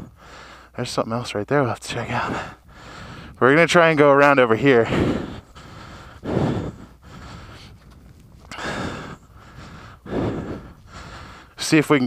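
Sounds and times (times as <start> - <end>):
man breathing heavily: 0.0 - 0.8, 2.0 - 3.4, 4.4 - 11.7.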